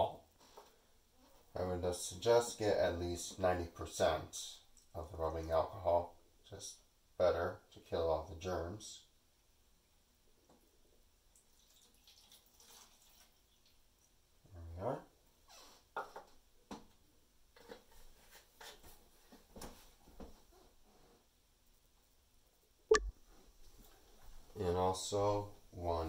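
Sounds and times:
liquid pouring into plastic container: 11.4 - 13.8.

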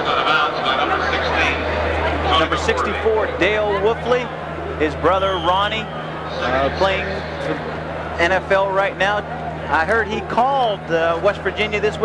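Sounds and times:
steady low hum: 0.0 - 12.0
voices talking: 0.0 - 12.0.

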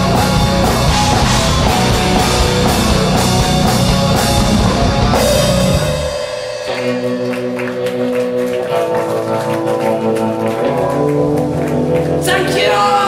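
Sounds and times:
distorted guitar chords ringing: 0.0 - 13.0
drums: 0.0 - 13.0
rock band playing live: 0.0 - 13.0.

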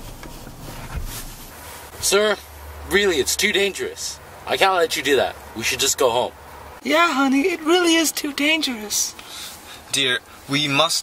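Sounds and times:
car cabin rumble: 0.0 - 1.6.

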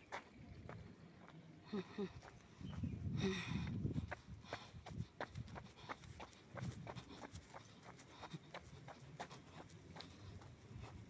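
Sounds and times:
quick footsteps on concrete: 3.7 - 11.0.

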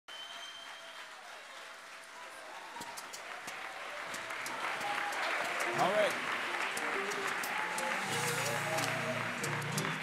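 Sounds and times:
audience applauding: 0.1 - 10.0.

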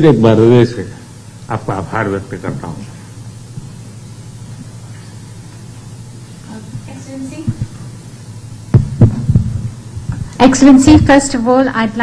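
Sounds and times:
low steady hum: 0.0 - 12.0
microphone being bumped: 6.7 - 7.8, 8.7 - 11.2.

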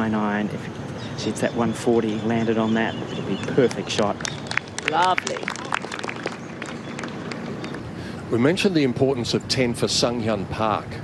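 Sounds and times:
low outdoor background: 0.0 - 11.0
light applause: 3.4 - 8.1.

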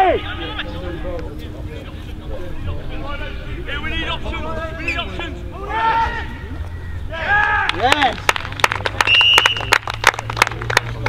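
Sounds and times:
scattered handclaps: 7.4 - 11.0
referee's whistle: 9.1 - 9.8.

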